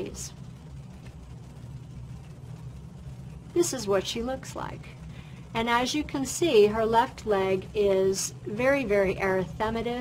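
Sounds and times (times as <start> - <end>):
low room tone hum: 0.0 - 10.0.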